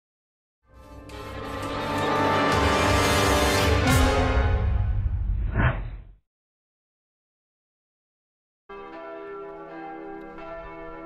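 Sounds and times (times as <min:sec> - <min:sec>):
church bells ringing: 0:08.7 - 0:11.0.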